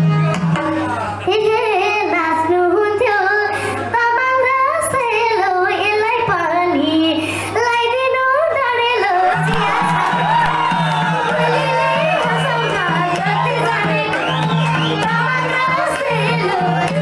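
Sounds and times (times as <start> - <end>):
girl singing through a pa: 1.2 - 10.0, 11.2 - 17.0.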